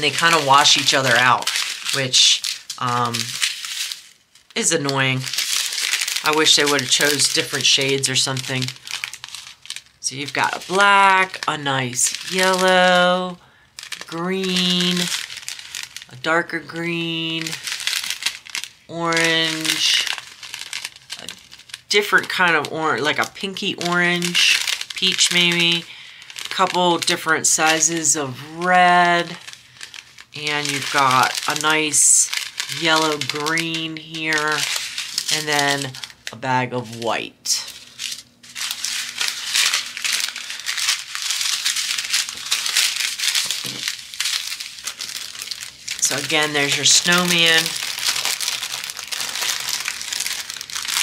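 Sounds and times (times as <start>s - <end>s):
plastic bags crinkling: 0.0s - 51.0s.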